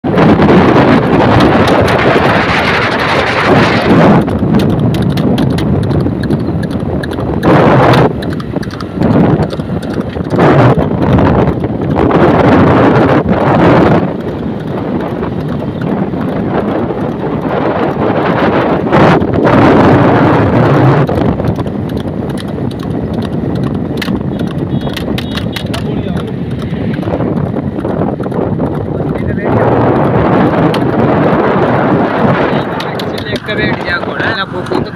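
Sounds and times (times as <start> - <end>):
wind buffeting microphone: 0.0 - 34.9
hooves clip-clopping on asphalt: 0.2 - 34.9.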